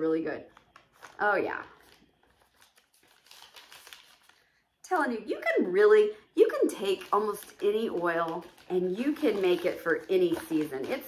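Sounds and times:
wrapping crinkling: 0:00.5 - 0:05.1, 0:06.4 - 0:11.0.

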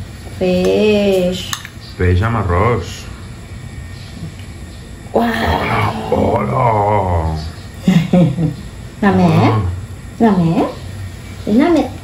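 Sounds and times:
person exclaiming: 0:05.2 - 0:07.4.

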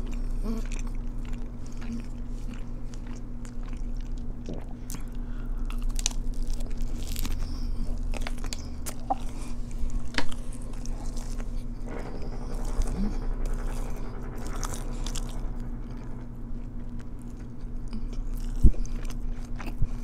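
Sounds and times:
crunchy biting and chewing: 0:00.0 - 0:11.7, 0:17.3 - 0:20.0.

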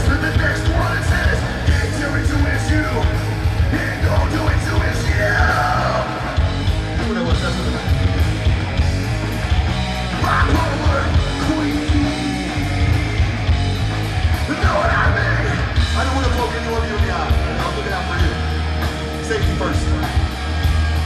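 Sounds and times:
singer's voice: 0:00.0 - 0:08.1, 0:10.1 - 0:13.5, 0:14.4 - 0:20.6
rock band playing live: 0:00.0 - 0:21.0.

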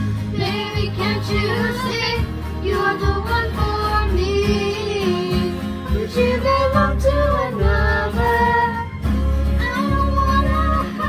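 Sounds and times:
strummed acoustic guitar: 0:00.0 - 0:11.0
girls singing: 0:00.3 - 0:11.0.

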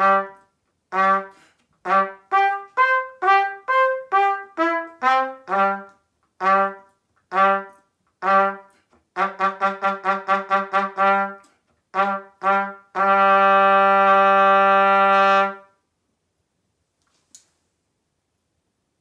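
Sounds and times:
solo trumpet: 0:00.0 - 0:15.8.

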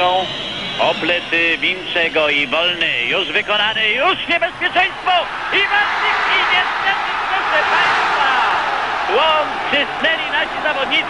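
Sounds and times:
stadium crowd cheering: 0:04.5 - 0:11.0.

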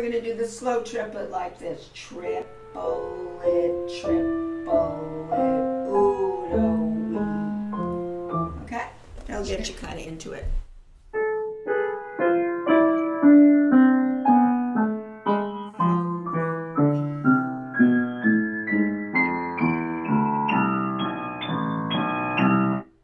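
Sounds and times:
piano playing a slow scale: 0:02.1 - 0:08.9, 0:11.1 - 0:23.0.

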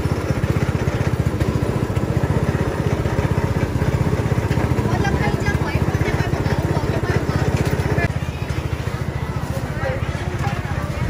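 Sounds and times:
small engine throbbing: 0:00.0 - 0:11.0
faint voices: 0:04.4 - 0:11.0.

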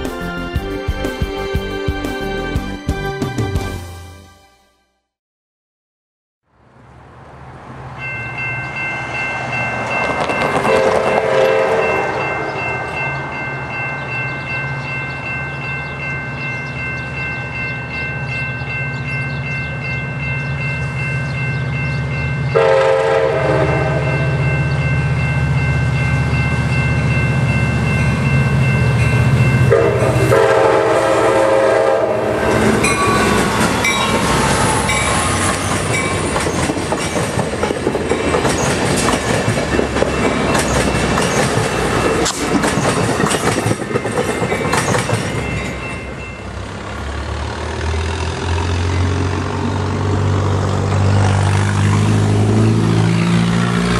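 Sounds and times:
diesel locomotive engine hum: 0:06.5 - 0:53.9
train horn chords: 0:10.6 - 0:13.1, 0:22.5 - 0:24.7, 0:29.6 - 0:35.4
wheel and rail clatter: 0:32.7 - 0:53.9.

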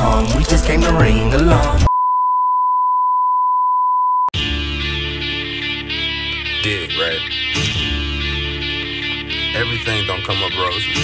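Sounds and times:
music: 0:00.0 - 0:01.9, 0:04.4 - 0:11.0.

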